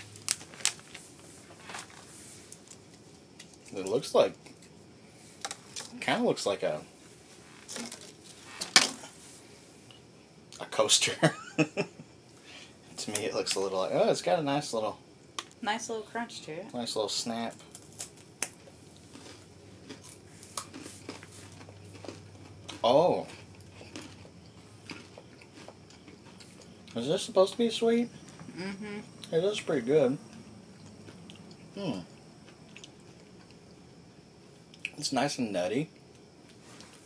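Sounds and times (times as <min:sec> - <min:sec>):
person chewing crisp cracker: 0:00.0 - 0:03.8, 0:17.6 - 0:27.0, 0:30.7 - 0:33.8.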